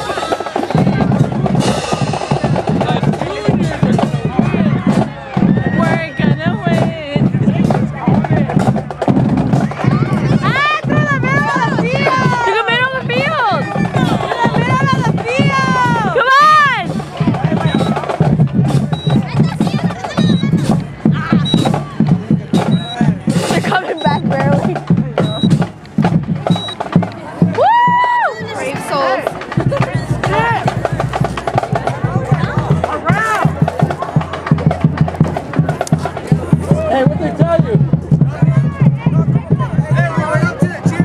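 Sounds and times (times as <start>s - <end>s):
crowd shouting and cheering: 0.0s - 41.0s
loud music with drum beat: 0.0s - 41.0s.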